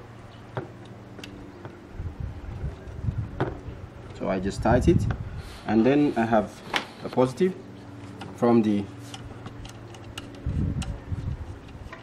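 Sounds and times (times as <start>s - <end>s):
light clicks of screw terminals: 9.1s - 12.0s.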